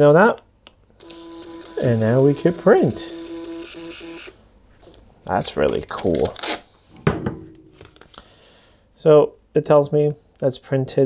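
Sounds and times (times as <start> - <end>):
faint paper rustling: 7.7 - 8.3.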